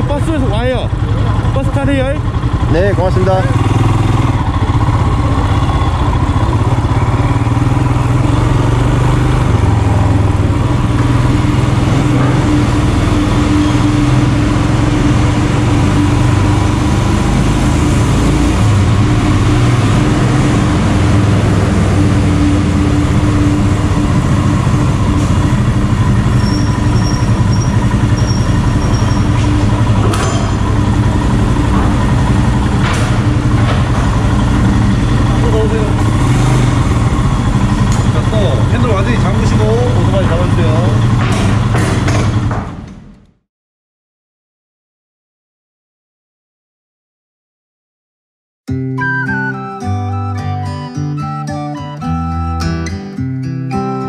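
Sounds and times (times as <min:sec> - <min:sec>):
motorcycle engine running: 0:00.0 - 0:43.1
sharp knocks: 0:32.8 - 0:34.2, 0:41.1 - 0:43.0.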